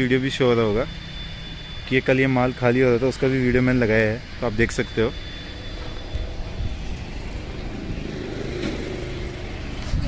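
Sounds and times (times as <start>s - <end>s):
low outdoor background rumble: 0.0s - 10.0s.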